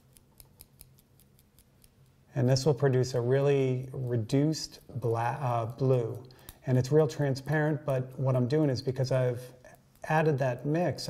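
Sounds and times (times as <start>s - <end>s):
paintbrush ticking in metal cup: 0.0s - 2.2s.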